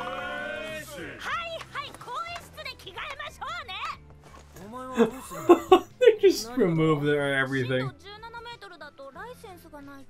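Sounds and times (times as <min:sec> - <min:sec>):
background music: 0:00.0 - 0:10.0
man laughing: 0:05.0 - 0:06.3.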